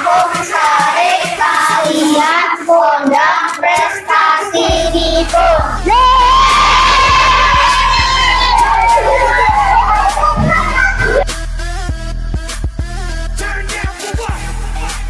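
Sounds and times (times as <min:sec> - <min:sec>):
children singing in unison: 0:00.0 - 0:11.2
music track with steady beat: 0:00.0 - 0:15.0
children shouting: 0:01.4 - 0:11.2.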